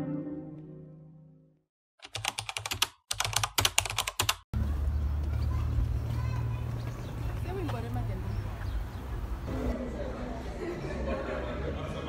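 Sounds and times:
guitar music: 0.0 - 1.4
keyboard typing clicks: 2.0 - 4.4
outdoor background noise: 4.6 - 12.0.

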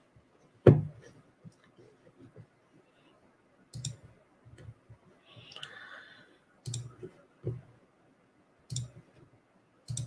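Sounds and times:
soft hiss: 0.1 - 10.0
computer control clicks: 8.7 - 9.0.

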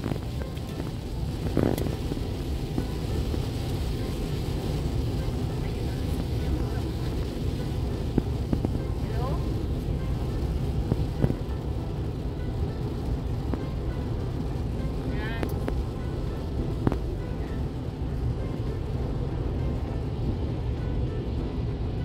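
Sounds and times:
car cabin road and engine noise: 0.0 - 22.0.

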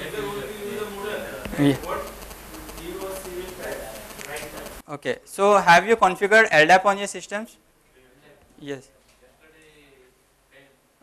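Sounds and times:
man speaking: 0.3 - 7.4.

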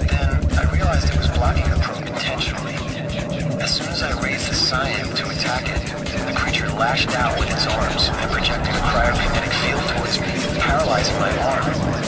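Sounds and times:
fast rolling bassline: 0.0 - 12.0
spoken voice sample: 0.0 - 12.0
synth effects: 0.0 - 12.0.

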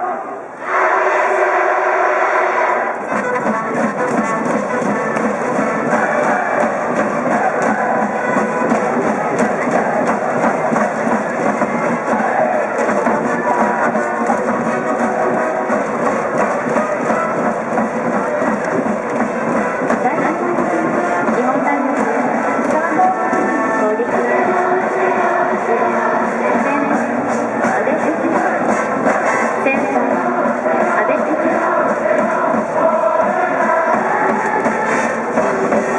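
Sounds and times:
students chanting: 0.0 - 35.9
brass band playing: 0.6 - 35.9
steady drum beat: 2.9 - 35.9.

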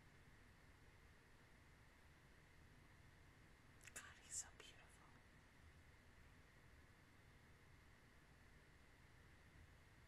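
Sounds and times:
woman whispering: 3.9 - 5.2.

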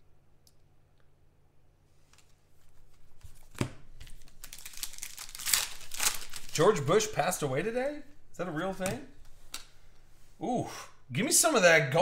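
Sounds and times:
foil wrapper tearing and crinkling: 4.0 - 7.1.

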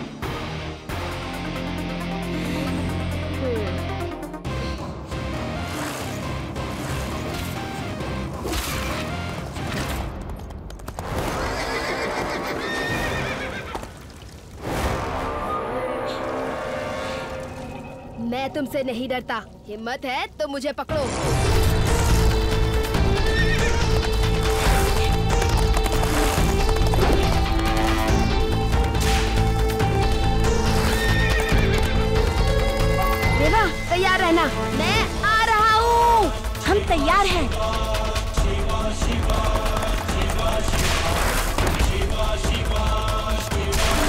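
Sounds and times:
background music: 0.0 - 44.0
horse whinnying: 11.2 - 14.0, 23.2 - 24.0, 30.7 - 32.0.

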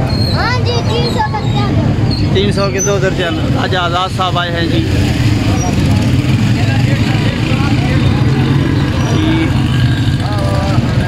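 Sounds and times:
murmur of voices: 0.0 - 11.0
vehicle engine rumbling: 0.0 - 11.0.

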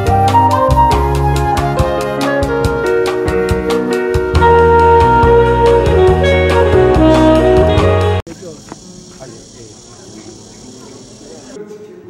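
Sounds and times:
music: 0.0 - 8.2, 10.1 - 12.0
insects chirring: 8.3 - 11.6
faint distant voices: 8.3 - 12.0.

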